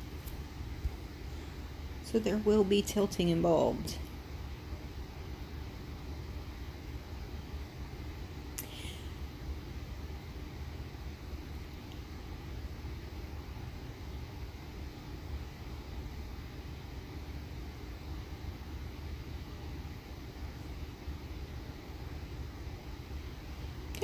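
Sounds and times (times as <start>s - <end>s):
faint hum: 0.0s - 24.0s.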